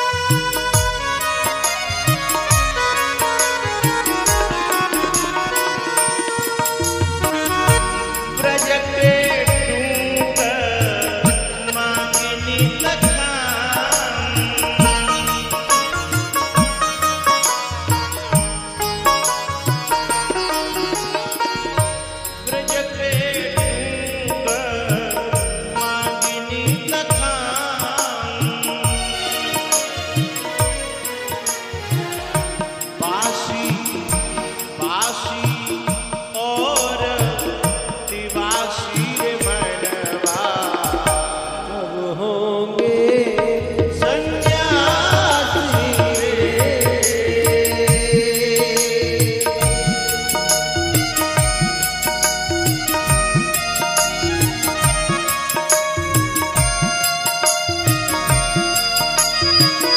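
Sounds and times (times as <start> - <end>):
deep hand-drum beats: 0.0 - 41.8, 43.2 - 59.9
wavering melody: 0.0 - 41.9, 44.0 - 59.9
harmonium held note: 0.0 - 42.0, 43.3 - 59.9.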